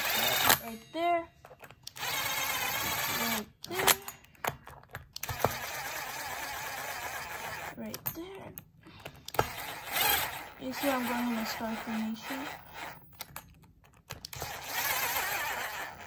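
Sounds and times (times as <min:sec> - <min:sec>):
impact driver running: 0:00.0 - 0:00.7, 0:01.8 - 0:04.1, 0:05.2 - 0:07.9, 0:09.0 - 0:13.3, 0:14.2 - 0:16.0.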